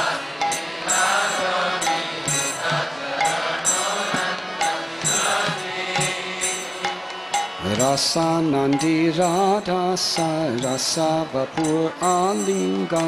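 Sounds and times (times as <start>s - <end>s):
hand cymbals striking: 0.0s - 13.0s
people singing: 0.0s - 13.0s.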